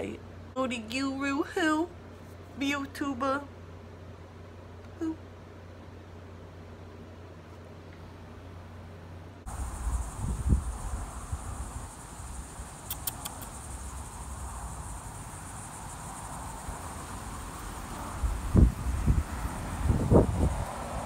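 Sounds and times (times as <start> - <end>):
crickets droning: 9.4 - 21.0.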